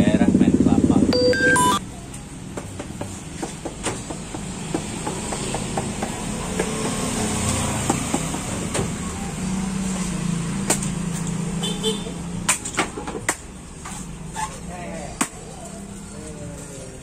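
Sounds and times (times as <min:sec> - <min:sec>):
steady traffic: 0:00.0 - 0:17.0
coconuts knocking: 0:02.5 - 0:07.1, 0:07.8 - 0:08.6, 0:12.4 - 0:13.5, 0:15.2 - 0:15.4
motor scooters passing: 0:04.0 - 0:14.3, 0:15.0 - 0:17.0.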